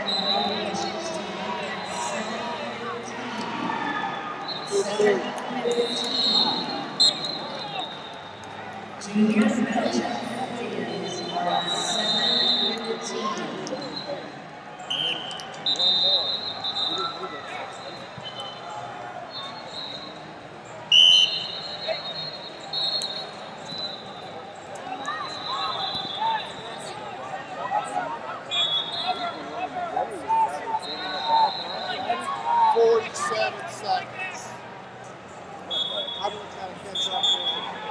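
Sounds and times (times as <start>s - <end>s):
hubbub of voices and shouts: 0.0s - 37.9s
referee whistle blasts: 5.7s - 8.4s, 11.5s - 12.9s, 14.8s - 18.7s, 20.9s - 24.1s, 25.2s - 26.6s, 28.5s - 29.5s, 30.7s - 32.2s, 35.7s - 37.9s.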